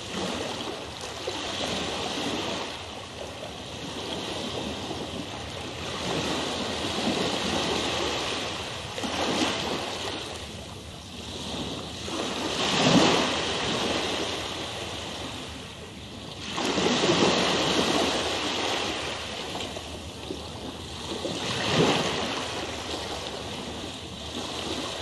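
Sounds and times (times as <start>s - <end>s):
rushing water: 11.8s - 25.0s.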